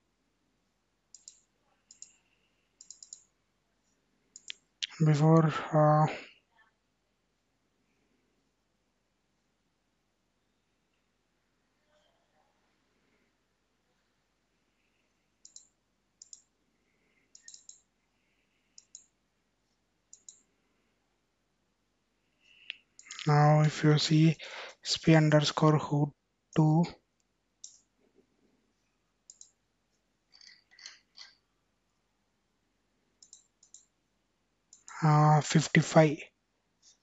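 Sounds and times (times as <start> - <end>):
computer mouse button clicks: 17.4 - 17.8.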